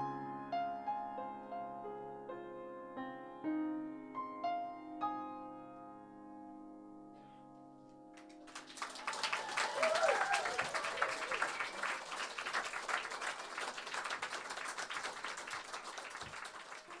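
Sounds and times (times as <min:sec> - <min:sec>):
audience applauding: 0:08.2 - 0:17.0.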